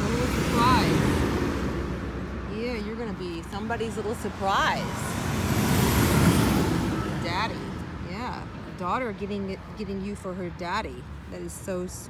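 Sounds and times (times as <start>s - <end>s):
vehicle passing by: 0.0s - 9.0s.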